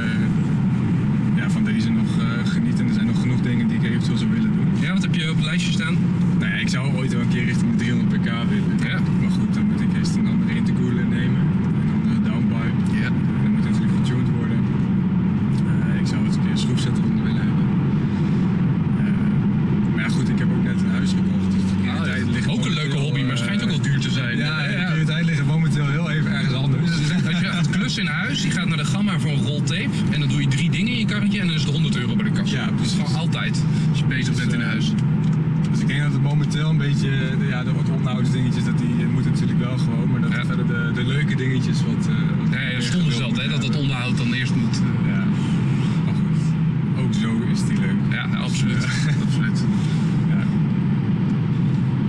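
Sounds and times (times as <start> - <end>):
car cabin engine and road drone: 0.0 - 52.0
car engine idling at exhaust: 0.0 - 52.0.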